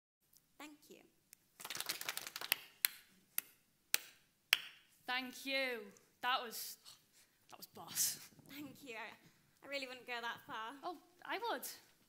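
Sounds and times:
hand applause: 0:01.6 - 0:04.7.

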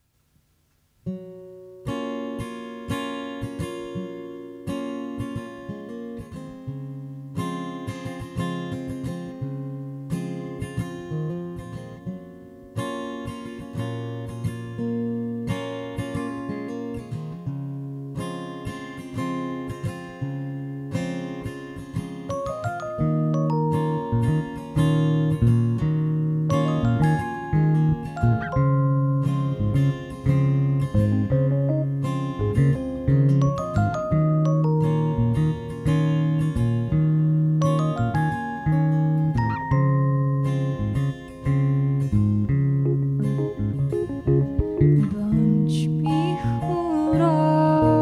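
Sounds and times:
acoustic guitar chords: 0:01.0 - 0:48.0.

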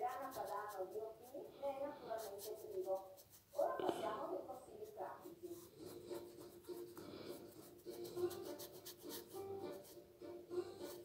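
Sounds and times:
scratching and rubbing on microphone: 0:00.0 - 0:09.4.

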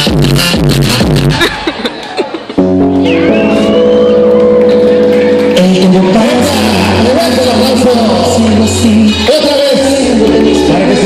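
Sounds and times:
loud dance music chord: 0:00.0 - 0:01.6, 0:02.6 - 0:11.0
thin high tone sliding upward: 0:02.9 - 0:04.6.

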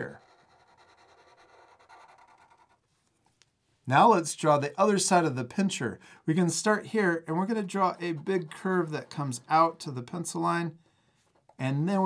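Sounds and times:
marker scratching on paper: 0:00.0 - 0:03.0, 0:07.6 - 0:09.6.

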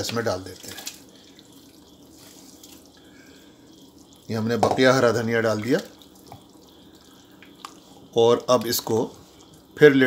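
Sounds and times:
liquid sloshing in pot: 0:00.0 - 0:10.0.

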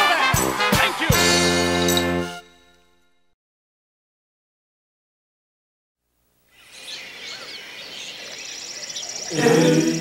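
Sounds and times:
birds chirping: 0:06.5 - 0:10.0
person singing: 0:09.3 - 0:10.0.

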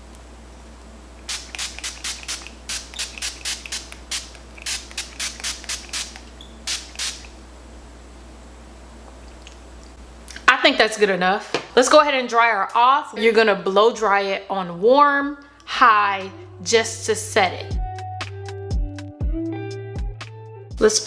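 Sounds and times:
spray bursts: 0:01.3 - 0:07.3.

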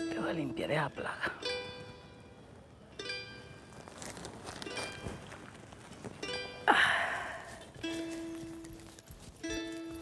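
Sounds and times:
plucked string instrument music: 0:00.0 - 0:06.7, 0:07.7 - 0:10.0.

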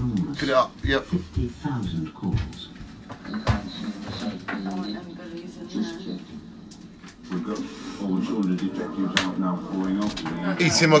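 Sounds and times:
television speech: 0:00.0 - 0:11.0.

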